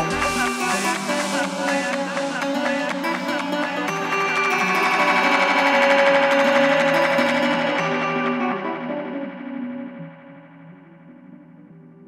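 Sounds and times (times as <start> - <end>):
electronic dance music: 0.0 - 11.9.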